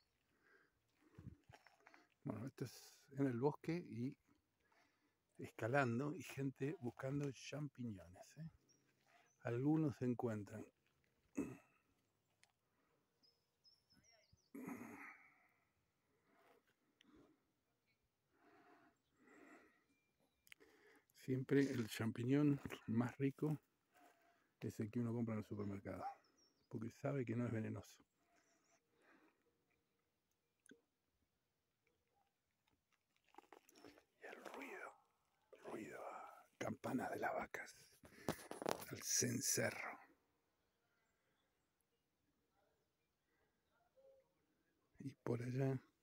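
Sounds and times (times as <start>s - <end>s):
person sighing: 14.6s - 15.4s.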